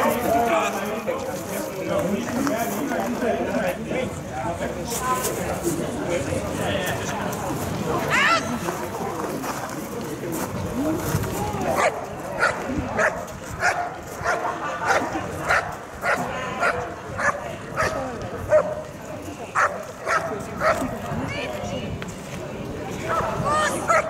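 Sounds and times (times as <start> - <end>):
dog barking: 11.8 - 18.8, 19.6 - 20.8.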